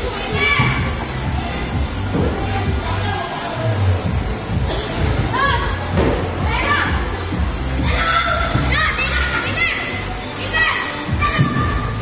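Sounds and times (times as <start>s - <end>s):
background music: 0.0s - 12.0s
children playing and calling out: 7.8s - 12.0s.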